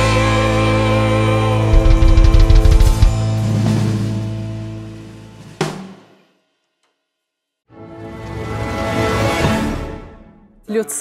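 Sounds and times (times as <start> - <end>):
sharp drum hit: 1.7 - 3.9
rapid drum fill: 1.7 - 4.1.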